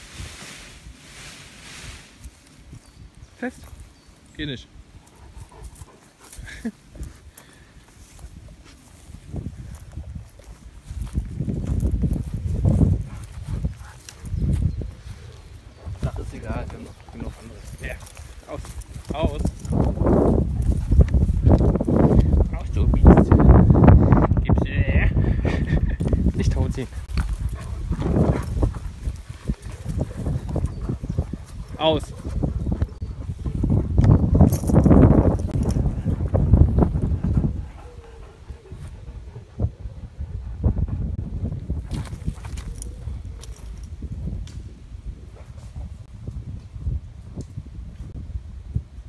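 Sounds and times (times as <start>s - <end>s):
muffled rumbling dog noise: 5.1s - 7.2s, 8.1s - 24.4s, 25.2s - 49.0s.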